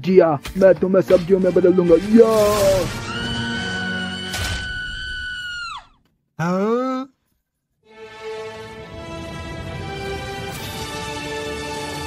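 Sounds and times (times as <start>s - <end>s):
cartoon character screaming: 2.5s - 5.9s.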